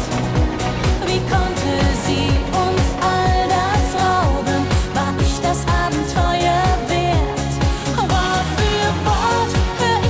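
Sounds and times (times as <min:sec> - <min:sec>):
pop music with kick drum beat: 0:00.0 - 0:10.0
woman singing: 0:00.8 - 0:10.0.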